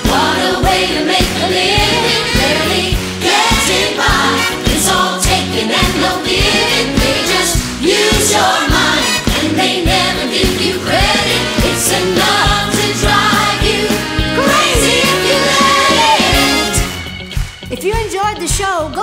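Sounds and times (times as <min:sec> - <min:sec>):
live band with driving beat: 0:00.0 - 0:19.0.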